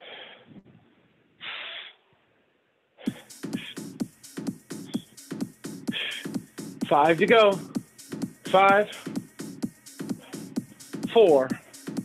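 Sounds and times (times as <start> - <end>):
man breathing hard: 0.0 - 0.6, 3.0 - 6.8, 7.6 - 12.0.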